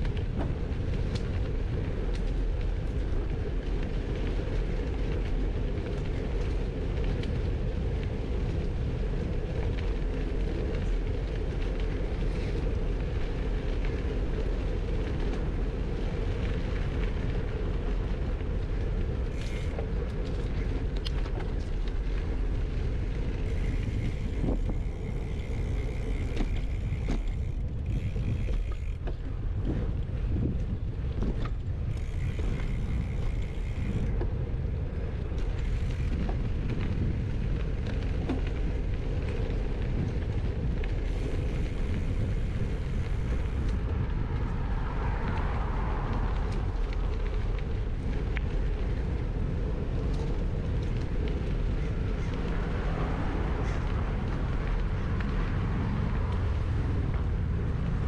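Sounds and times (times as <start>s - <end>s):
bike tyres rolling on dirt: 0.0s - 58.0s
wind on microphone: 0.0s - 58.0s.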